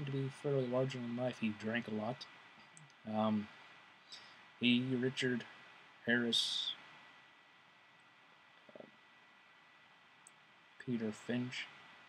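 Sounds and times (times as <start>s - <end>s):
person saying uh: 3.1s - 3.4s.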